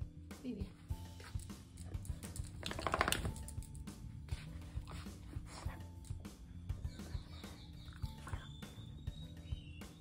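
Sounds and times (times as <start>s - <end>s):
quiet background music: 0.0s - 10.0s
dog claws clicking on tiles: 1.4s - 3.9s.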